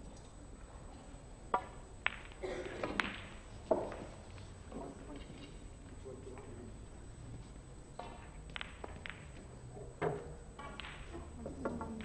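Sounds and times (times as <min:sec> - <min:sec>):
cue striking ball: 0:01.5 - 0:04.1, 0:08.0 - 0:09.4, 0:10.0 - 0:12.0
snooker balls colliding: 0:01.5 - 0:05.6, 0:07.9 - 0:12.0.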